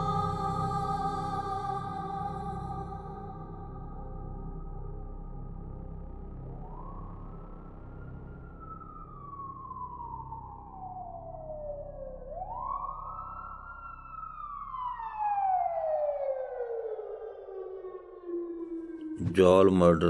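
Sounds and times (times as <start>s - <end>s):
faint low rumble: 0.0s - 16.8s, 18.3s - 20.0s
police car siren wailing: 8.6s - 20.0s.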